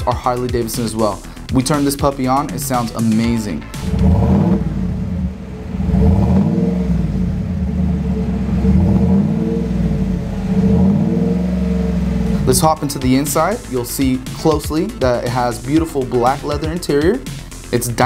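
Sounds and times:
truck engine revving: 2.4 - 15.0.

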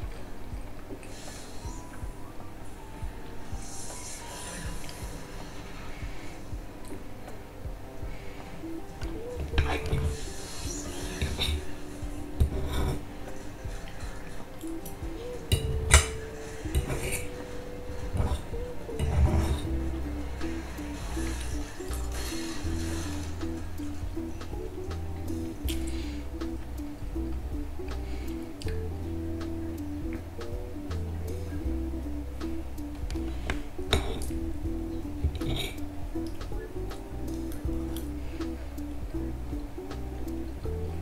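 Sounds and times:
music with melody and bass: 5.9 - 41.0.

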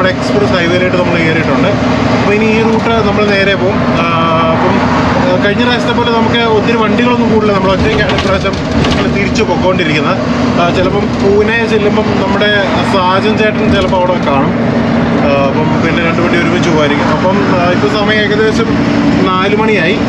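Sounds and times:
man talking: 0.0 - 20.0
truck engine drone from cab: 0.0 - 20.0.

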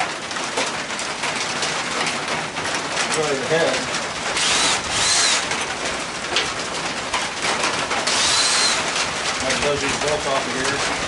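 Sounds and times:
cordless drill whining: 4.4 - 5.6, 8.0 - 9.1.

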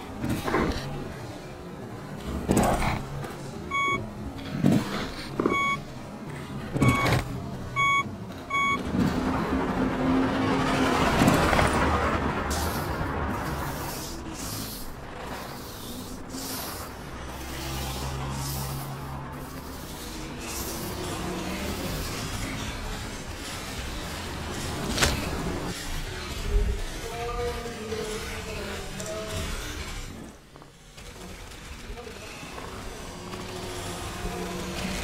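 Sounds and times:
short high beeps: 3.7 - 4.0, 5.5 - 5.8, 6.8 - 7.1, 7.8 - 8.8.

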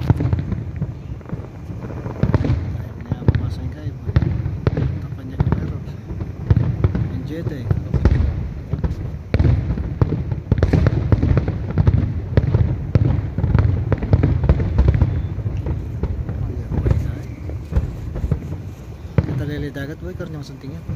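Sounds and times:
fireworks bangs and crackles: 0.0 - 20.9.

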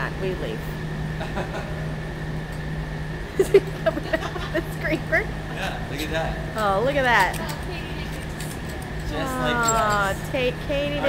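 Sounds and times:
low mechanical hum: 0.0 - 11.0
thin high whine: 0.0 - 11.0.

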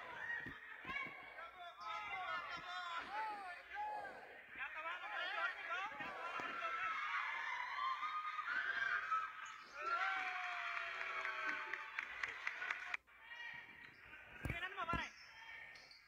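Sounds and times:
people calling out in a gym: 0.0 - 11.8.

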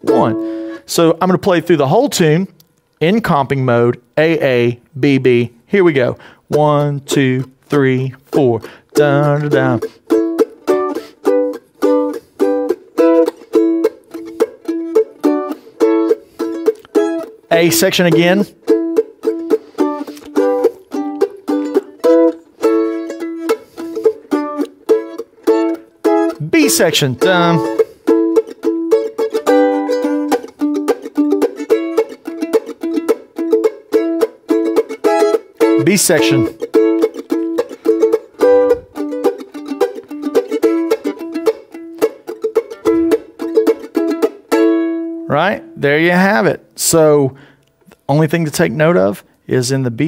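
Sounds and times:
mandolin chord strokes: 0.0 - 2.3, 6.1 - 47.1.

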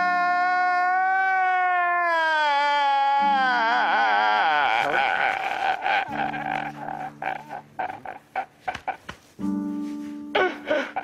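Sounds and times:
man sobbing: 0.0 - 9.1, 10.3 - 11.0.

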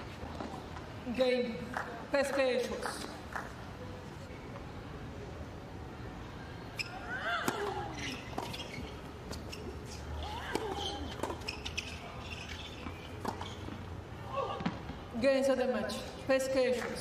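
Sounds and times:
tennis ball bouncing: 6.8 - 15.0.

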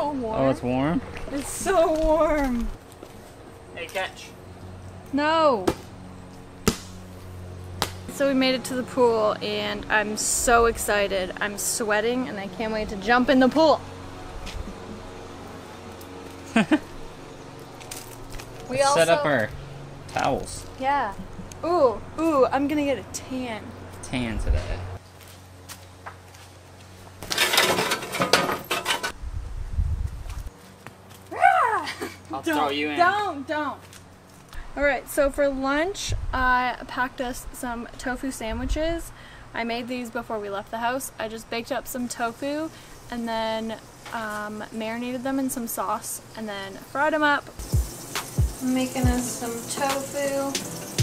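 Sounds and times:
plastic ball smacks: 6.6 - 7.0.

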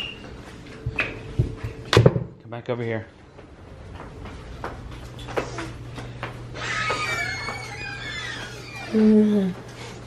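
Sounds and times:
high wavering vocal whine: 6.6 - 9.6.

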